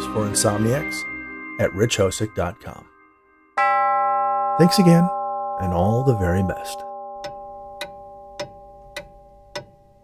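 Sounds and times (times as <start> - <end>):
held chord of bell-like tones: 0.0 - 8.8
clock ticking: 6.8 - 10.0.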